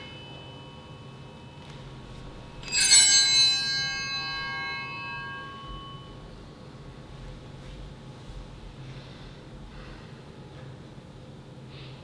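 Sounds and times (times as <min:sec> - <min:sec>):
altar bells ringing: 0:00.0 - 0:07.1.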